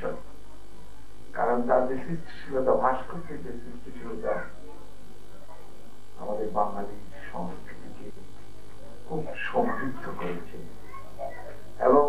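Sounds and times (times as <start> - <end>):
man speaking into a microphone: 0.0 - 0.2, 1.4 - 4.5, 6.2 - 8.3, 9.1 - 10.8, 11.8 - 12.0.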